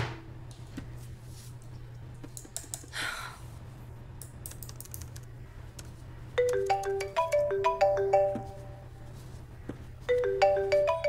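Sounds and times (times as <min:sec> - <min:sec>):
low steady hum: 0:00.0 - 0:11.0
phone ringtone melody: 0:06.4 - 0:09.0, 0:10.1 - 0:11.0.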